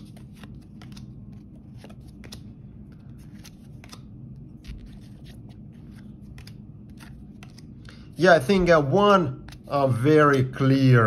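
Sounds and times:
trading cards clicking and rustling: 0:00.0 - 0:08.7
faint low hum: 0:00.0 - 0:11.0.

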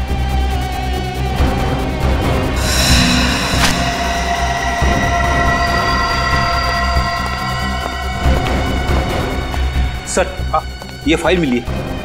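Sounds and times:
low rumble: 0:02.6 - 0:10.0
drone of held tones: 0:02.6 - 0:10.1.

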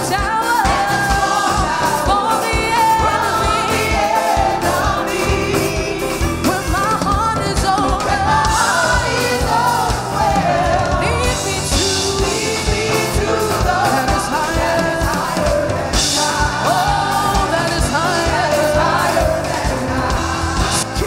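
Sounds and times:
band with drums and bass: 0:00.0 - 0:21.0
group of singers: 0:00.0 - 0:21.0.

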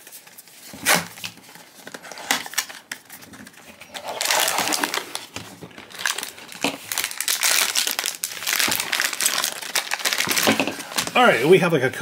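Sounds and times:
foil bag crinkling: 0:00.1 - 0:11.2.

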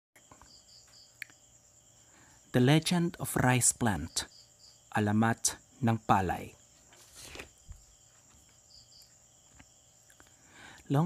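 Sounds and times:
insects chirring: 0:00.2 - 0:11.0.

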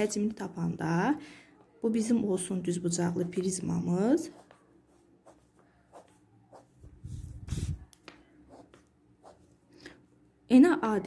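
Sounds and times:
pencil scratching on paper: 0:04.2 - 0:07.9, 0:08.5 - 0:09.5.

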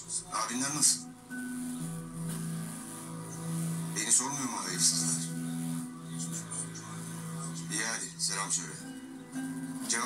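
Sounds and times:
low drone underscore music: 0:00.0 - 0:10.0.

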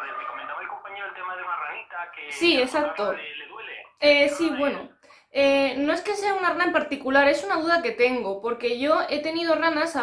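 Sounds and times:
voice over phone speaker: 0:00.0 - 0:05.0.

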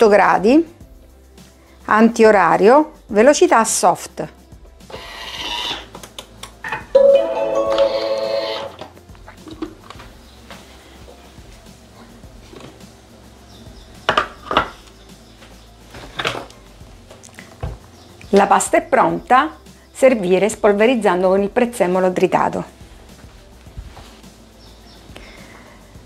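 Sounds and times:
held musical tone: 0:06.9 - 0:09.1.

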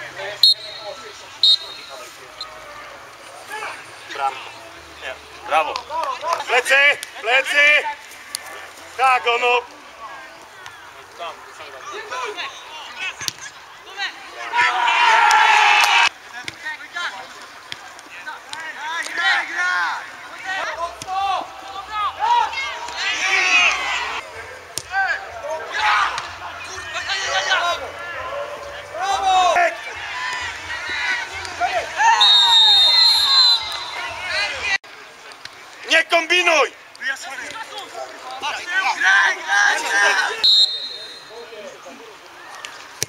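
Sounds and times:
people shouting and calling out: 0:00.0 - 0:34.9, 0:35.8 - 0:43.0.

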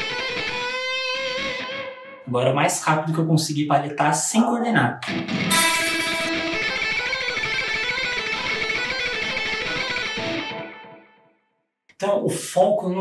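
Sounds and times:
fast electric guitar picking run: 0:00.0 - 0:01.9, 0:05.0 - 0:10.9.

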